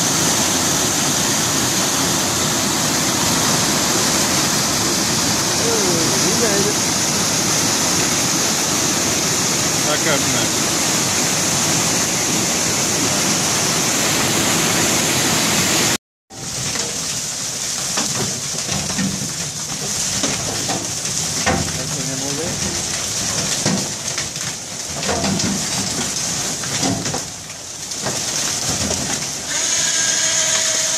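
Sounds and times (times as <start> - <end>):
creek water rushing over rocks: 0.0 - 16.0
river water rushing: 0.0 - 16.0
knocks and clatter on metal deck: 16.3 - 29.4.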